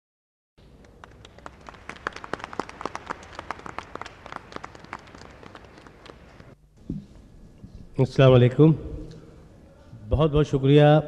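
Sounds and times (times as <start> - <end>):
audience applauding: 0.8 - 6.6.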